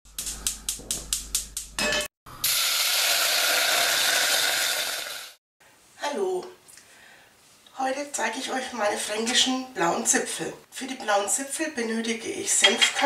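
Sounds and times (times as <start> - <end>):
gas burner hissing: 2.4 - 5.4.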